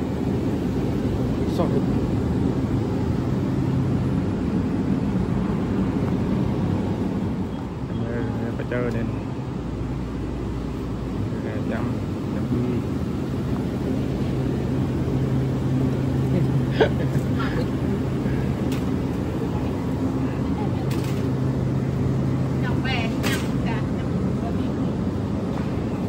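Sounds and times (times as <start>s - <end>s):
low equipment hum: 0.0s - 26.0s.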